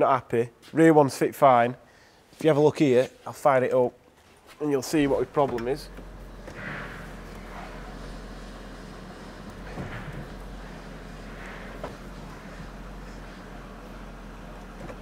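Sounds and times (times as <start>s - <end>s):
diesel engine idling: 5.0s - 15.0s.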